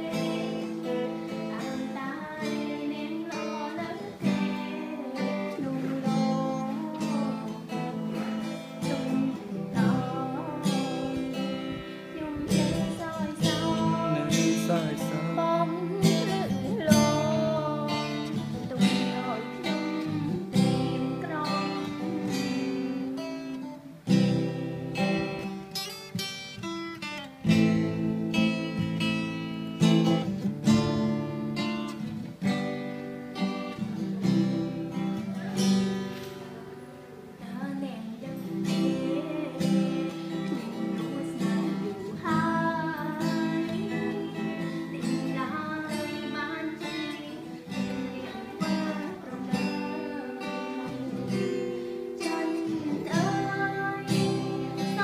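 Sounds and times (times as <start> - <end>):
acoustic guitar strumming: 0.0 - 55.0.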